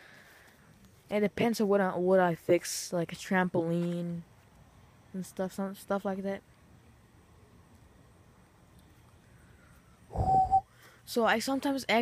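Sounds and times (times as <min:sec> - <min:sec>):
wheezing breath with whistle: 0:10.1 - 0:11.0.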